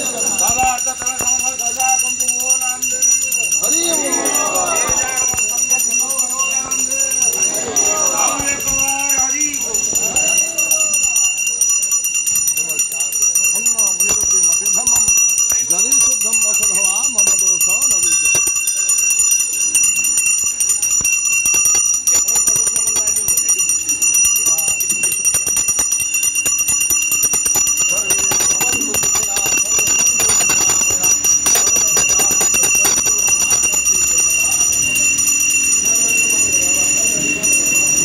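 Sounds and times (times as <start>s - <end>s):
crowd voices: 0.0s - 12.2s, 26.5s - 38.0s
small bells jingling: 0.0s - 38.0s.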